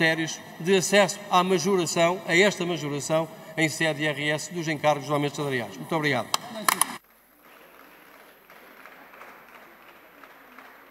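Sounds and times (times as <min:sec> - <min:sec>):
faint scattered applause: 0:06.0 - 0:10.9.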